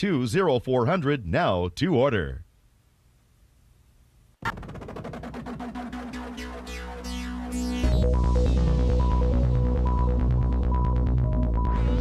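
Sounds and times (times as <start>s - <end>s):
pulsing synthesizer: 5.7s - 12.0s.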